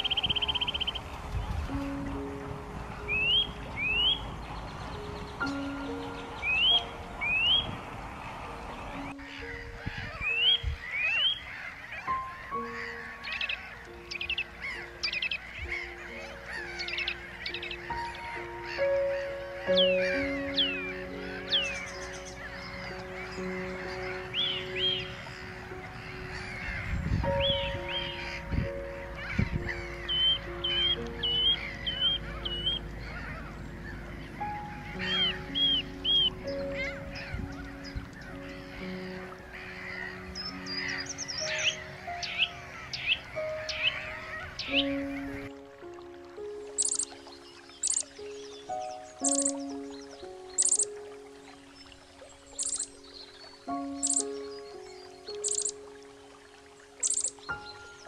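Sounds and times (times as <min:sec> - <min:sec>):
gulls calling: 0:00.0 - 0:58.0
slow background music: 0:00.0 - 0:58.0.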